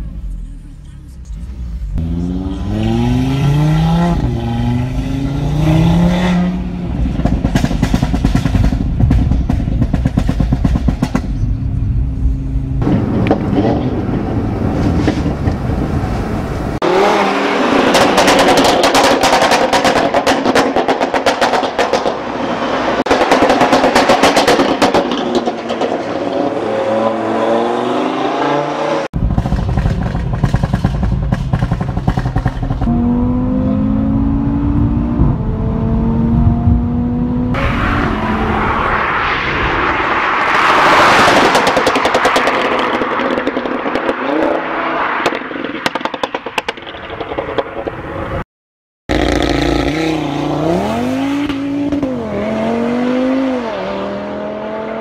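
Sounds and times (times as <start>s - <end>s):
car engine revving: 0.0s - 9.1s, 22.6s - 46.4s, 49.1s - 55.0s
exhaust crackles and pops: 17.9s - 22.2s, 29.2s - 32.9s, 40.3s - 48.4s.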